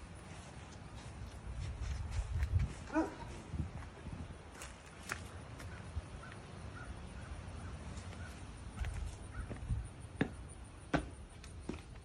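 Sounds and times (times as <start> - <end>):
dog barking: 2.9 - 3.3.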